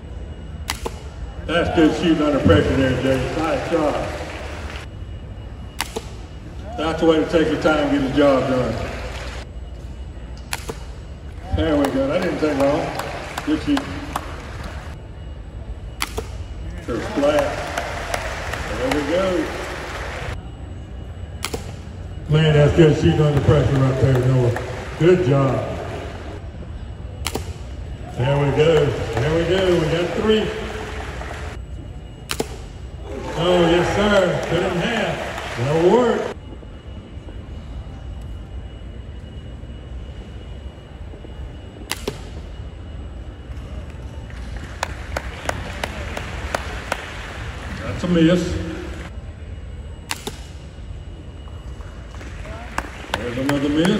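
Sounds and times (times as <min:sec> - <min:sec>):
low room hum: 0:00.0 - 0:53.9.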